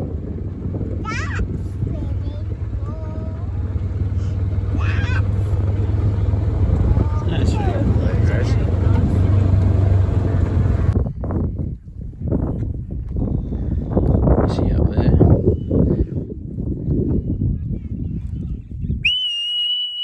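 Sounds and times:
farm vehicle engine droning: 0:00.0 - 0:11.0.

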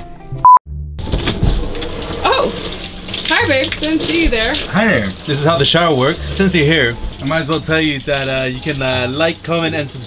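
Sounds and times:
shower head spraying water: 0:01.1 - 0:10.0.

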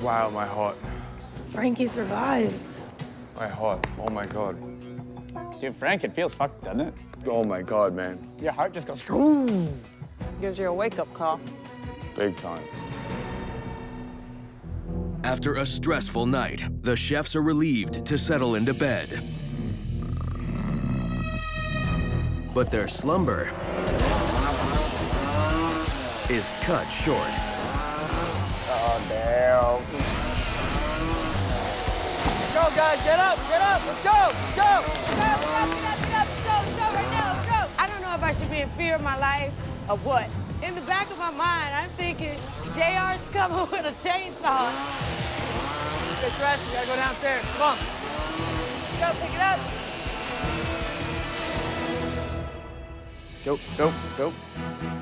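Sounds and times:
background music: 0:00.0 - 0:55.0
chainsaw revving: 0:23.6 - 0:52.4.

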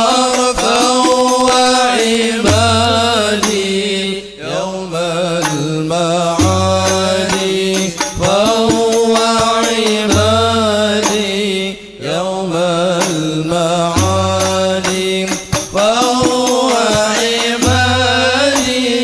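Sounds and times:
person singing with vibrato: 0:00.0 - 0:19.0
drum strokes: 0:00.3 - 0:03.8.

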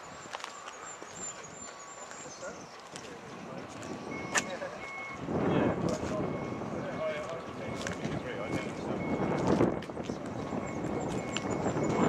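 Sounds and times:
faint voices murmuring: 0:00.7 - 0:12.0.

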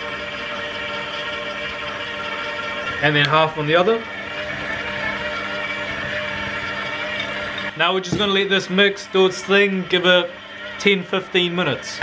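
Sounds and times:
stand mixer motor humming: 0:00.0 - 0:12.0.

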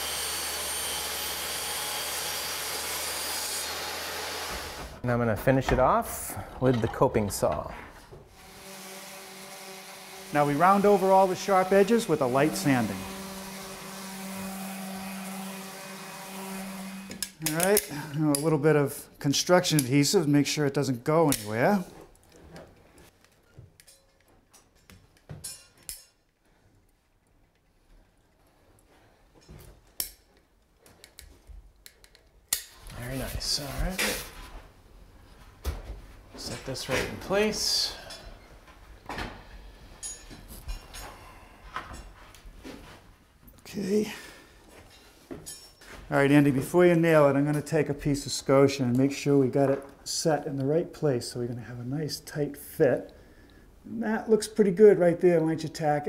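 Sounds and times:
electric hand sander running: 0:00.0 - 0:05.0, 0:08.4 - 0:17.2.

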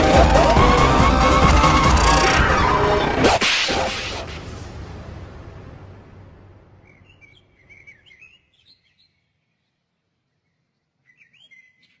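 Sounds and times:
birds chirping: 0:06.8 - 0:12.0.

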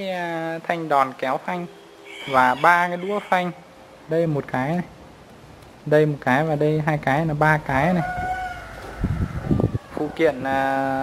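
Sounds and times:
long high animal call: 0:01.7 - 0:03.7.

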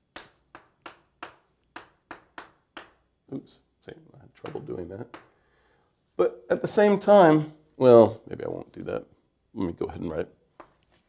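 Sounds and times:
pen tapping on a board: 0:00.1 - 0:03.1, 0:04.4 - 0:05.4.

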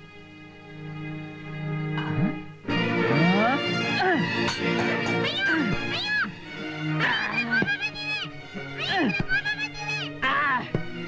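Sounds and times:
comic film music with pitch swoops: 0:02.0 - 0:11.0.

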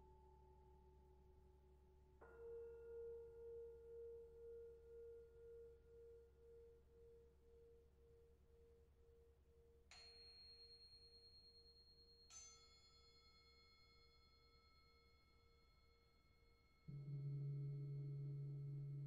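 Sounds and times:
small high-pitched bell strikes: 0:09.9 - 0:17.2
singing bowl humming: 0:16.7 - 0:19.0.

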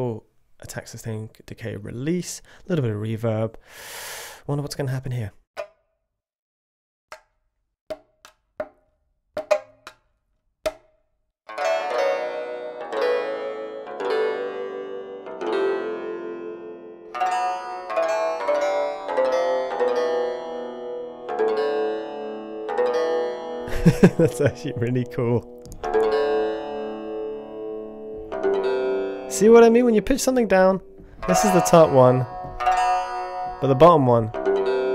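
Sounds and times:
plucked lute notes and chords: 0:11.5 - 0:34.9.

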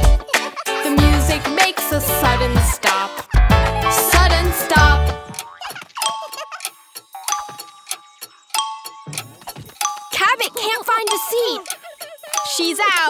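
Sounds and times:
bouncy children's music: 0:00.0 - 0:13.0
chiming dings: 0:05.4 - 0:13.0
high cartoon voice: 0:10.2 - 0:13.0.

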